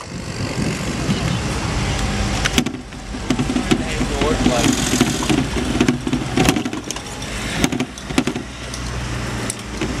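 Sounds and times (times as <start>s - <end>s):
bicycle rattling over paving: 0.0s - 10.0s
city traffic rumble: 0.0s - 10.0s.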